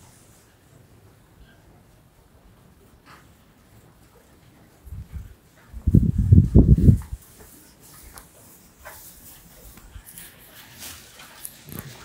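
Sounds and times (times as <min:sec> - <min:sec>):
cattle snuffling through feed: 0:02.9 - 0:12.0.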